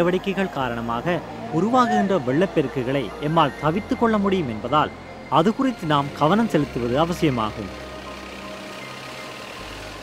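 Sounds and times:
vehicle engines: 0.0s - 10.0s.

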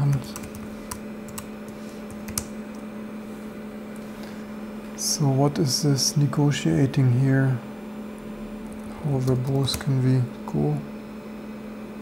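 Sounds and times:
computer keyboard keystrokes: 0.0s - 2.8s, 8.6s - 9.9s
steady low hum: 0.0s - 12.0s.

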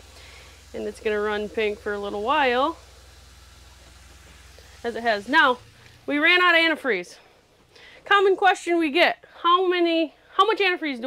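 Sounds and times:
water pump humming: 0.0s - 10.7s.

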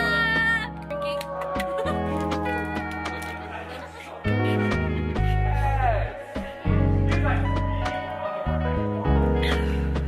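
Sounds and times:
background music with bass and beat: 0.0s - 10.0s.

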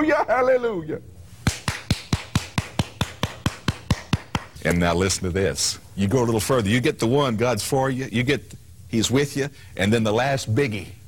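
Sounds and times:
man clapping hands rapidly: 1.4s - 4.6s.

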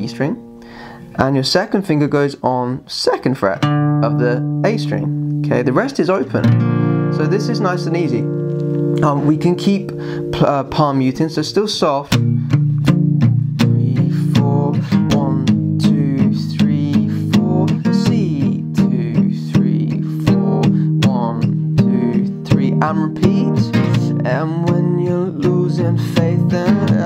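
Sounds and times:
acoustic guitar strummed softly: 3.6s - 27.0s
man singing quietly: 9.0s - 11.9s, 13.6s - 27.0s.

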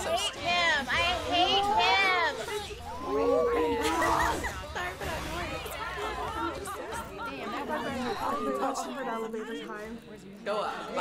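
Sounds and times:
overlapping chatter of voices: 0.0s - 11.0s.

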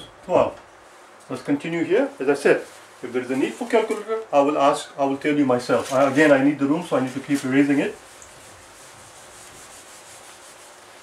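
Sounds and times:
eraser rubbing on whiteboard: 6.9s - 11.0s.

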